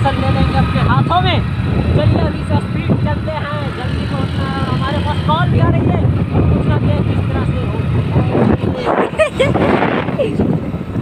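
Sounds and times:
motorcycle engine rumble: 0.0 - 11.0
wind buffeting microphone: 0.0 - 11.0.

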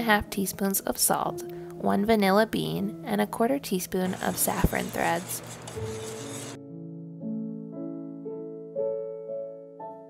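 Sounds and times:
soft piano music: 0.0 - 10.0
whisking flour in a bowl: 4.0 - 6.6.

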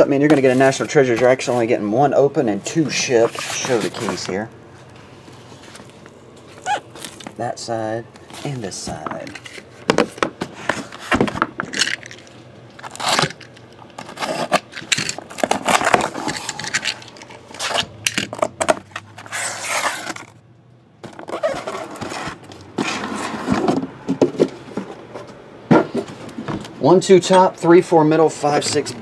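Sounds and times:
cardboard scraping and rustling: 2.6 - 7.4, 8.2 - 11.6, 14.0 - 20.4, 21.0 - 26.8.

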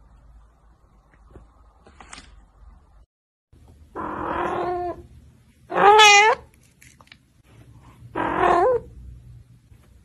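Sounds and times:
kitten meowing: 5.7 - 6.5.

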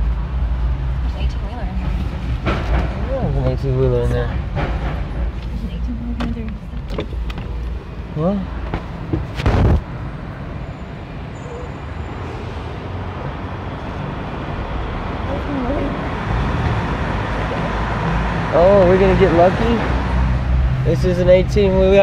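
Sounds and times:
car engine and tyre rumble: 0.0 - 22.0
loud thump: 8.6 - 9.9.

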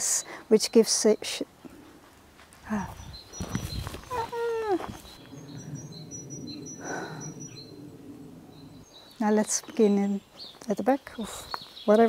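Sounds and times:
small birds chirping: 0.0 - 12.0
steady low hum: 2.8 - 10.4.

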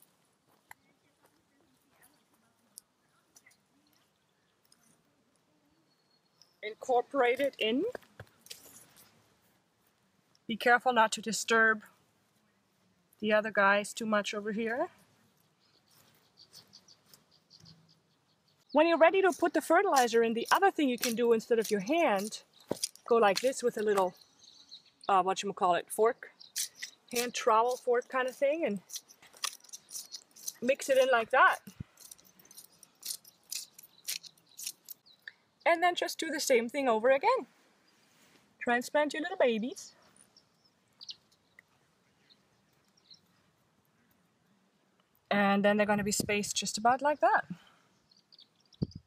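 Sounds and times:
fingers rustling in soil: 18.7 - 24.2, 26.4 - 35.2.

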